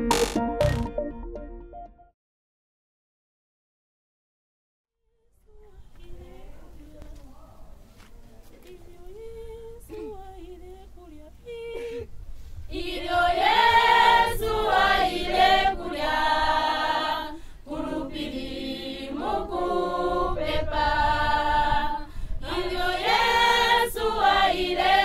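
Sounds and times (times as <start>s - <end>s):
group singing unaccompanied: 12.7s - 25.0s.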